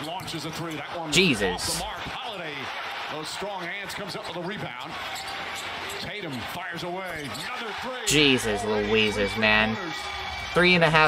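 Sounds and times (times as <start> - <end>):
commentator talking: 0.0 - 4.9, 6.2 - 11.0
arena crowd noise: 0.0 - 11.0.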